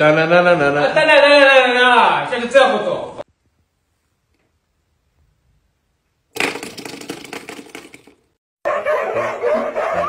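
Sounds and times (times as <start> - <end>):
dogs yowling: 8.7 - 10.0.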